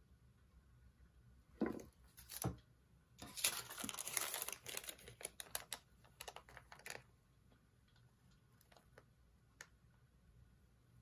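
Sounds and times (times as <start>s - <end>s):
paper receipt rustling: 3.2s - 7.0s.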